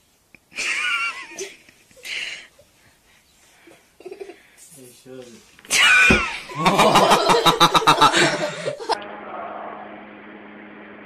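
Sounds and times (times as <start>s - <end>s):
person stifled laugh: 5.7s - 9.0s.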